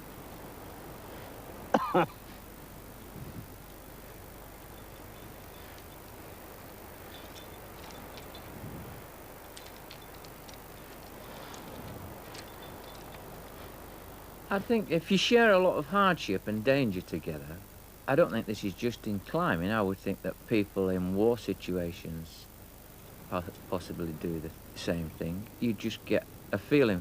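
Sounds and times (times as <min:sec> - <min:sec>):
faint hiss: 0:00.0 - 0:27.0
person coughing: 0:01.7 - 0:02.2
climbing hardware clinking: 0:07.0 - 0:13.4.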